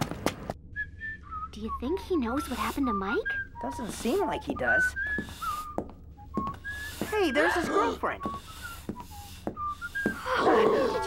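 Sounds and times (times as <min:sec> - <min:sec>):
quick footsteps or taps: 0:00.0 - 0:00.6, 0:05.1 - 0:07.2
thin whistle-like melody: 0:00.7 - 0:11.0.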